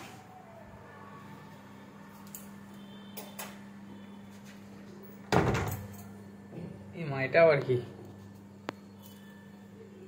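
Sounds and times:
door slamming: 5.3 - 5.8.

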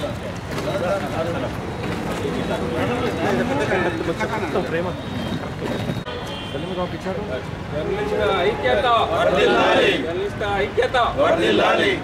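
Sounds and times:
men talking over one another: 0.0 - 6.0, 6.8 - 12.0.

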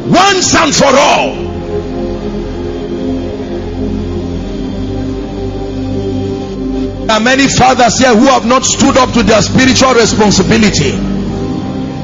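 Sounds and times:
held ambient chord: 0.0 - 12.0
low droning bass: 0.0 - 12.0.

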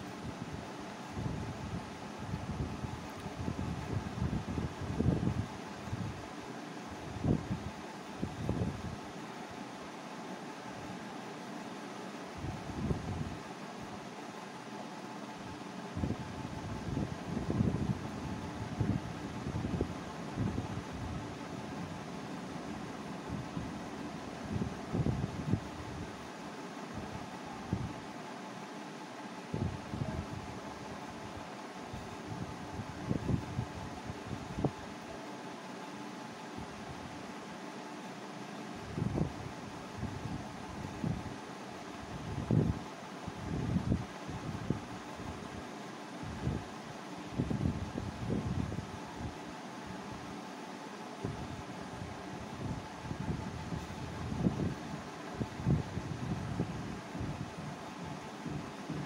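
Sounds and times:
background hum and hiss: 0.0 - 59.0.

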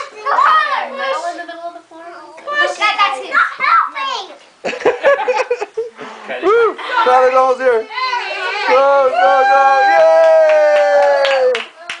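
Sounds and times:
high-pitched cheering shout: 8.0 - 11.7
hand claps: 10.0 - 12.0.

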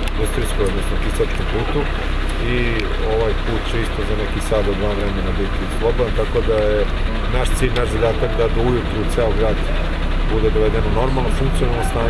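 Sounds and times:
vehicle engines rumbling: 0.0 - 12.0
man speaking: 0.1 - 12.0.

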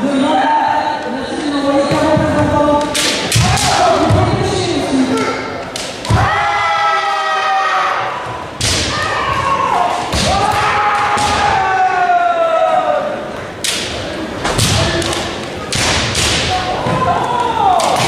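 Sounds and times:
bamboo swords clashing: 2.8 - 4.1, 8.6 - 11.6, 13.6 - 18.0.

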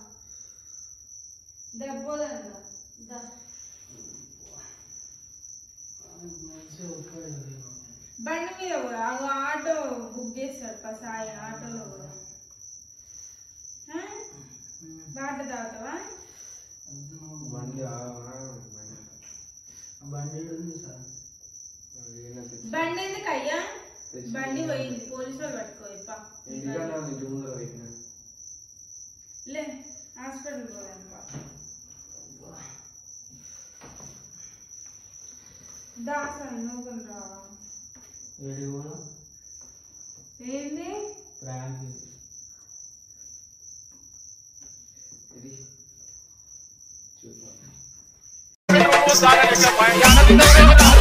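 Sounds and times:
cricket trilling: 0.0 - 51.0
steady high-pitched tone: 48.7 - 51.0.

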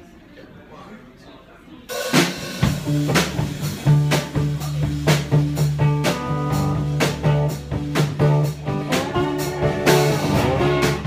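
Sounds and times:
quiet voices talking: 0.0 - 11.0
live rock band playing: 1.9 - 11.0.

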